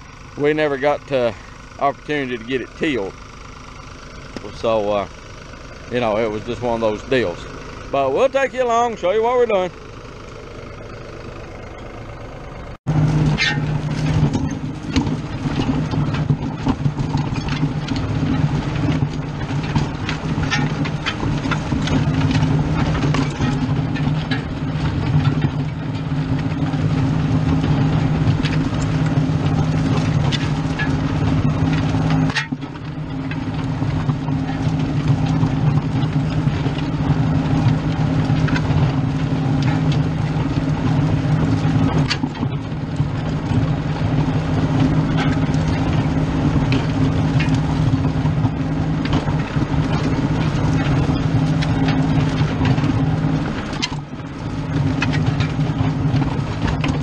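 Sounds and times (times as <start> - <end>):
disc harrow clattering: 0.0 - 12.3, 12.9 - 57.0
tractor diesel engine under load: 0.0 - 57.0.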